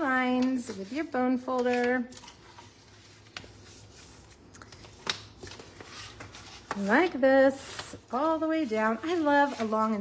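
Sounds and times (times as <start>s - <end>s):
paper rubbing and rustling: 0.7s - 10.0s.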